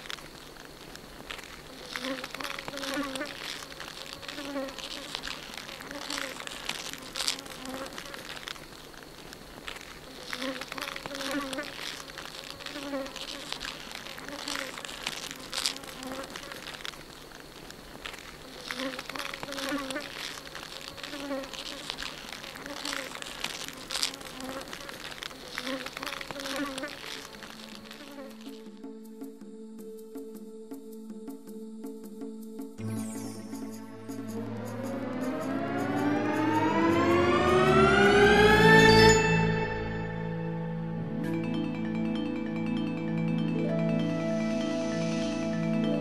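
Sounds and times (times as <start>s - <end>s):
forest insects chorus: 0.0s - 46.0s
sustained music chord: 32.8s - 46.0s.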